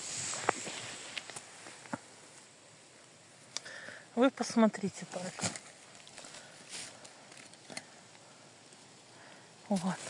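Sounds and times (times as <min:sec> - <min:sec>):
rustle of dry leaves: 0:00.0 - 0:03.5, 0:04.5 - 0:10.0.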